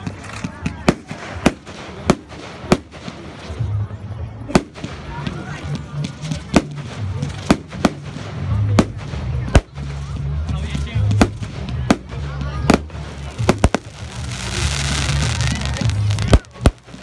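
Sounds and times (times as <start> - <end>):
fireworks bangs: 0.0 - 3.8, 4.5 - 10.0, 11.1 - 17.0.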